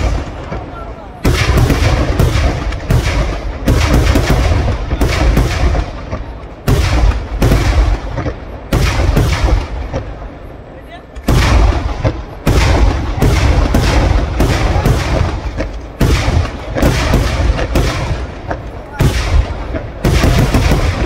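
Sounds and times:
fireworks exploding: 0.0s - 21.0s.

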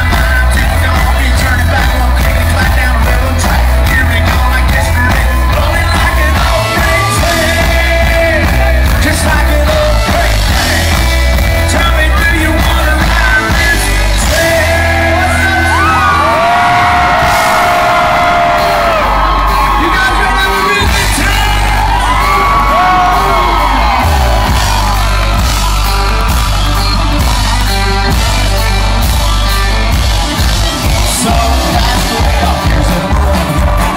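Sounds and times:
heavy bass and drum beat: 0.0s - 33.9s
live country band playing: 0.0s - 33.9s
person singing: 0.0s - 33.9s.

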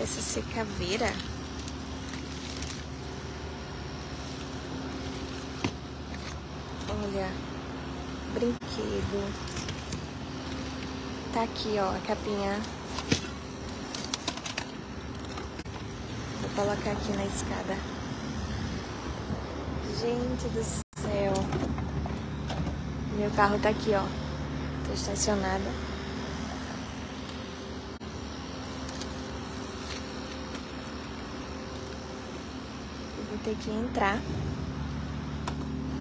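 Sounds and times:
low mechanical motor hum: 0.0s - 36.0s
outdoor noise: 0.0s - 36.0s
steady background noise: 0.0s - 36.0s
plastic bags crinkling: 0.9s - 3.3s.

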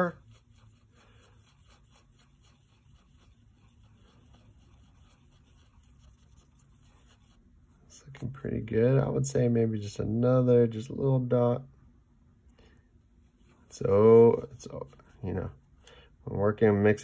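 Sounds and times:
paintbrush swishing in paint: 0.0s - 8.0s, 13.2s - 15.6s
low steady hum: 0.0s - 17.0s.

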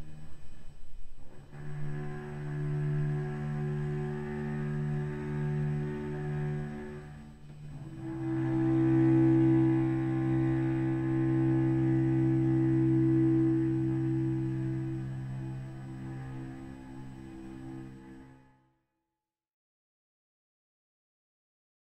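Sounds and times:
cello bowing sustained note: 0.0s - 18.7s.

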